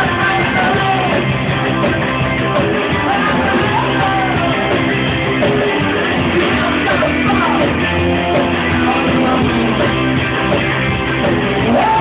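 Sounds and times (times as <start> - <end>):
bass guitar: 0.0 - 12.0
electric guitar: 0.0 - 12.0
rock band playing live: 0.0 - 12.0.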